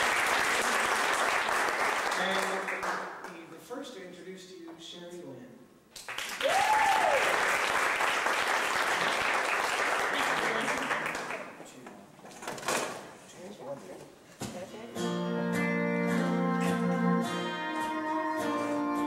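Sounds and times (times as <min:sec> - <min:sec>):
audience applause: 0:00.0 - 0:03.1, 0:06.0 - 0:11.6
acoustic guitar: 0:14.4 - 0:19.0
pedal steel guitar notes: 0:15.0 - 0:19.0.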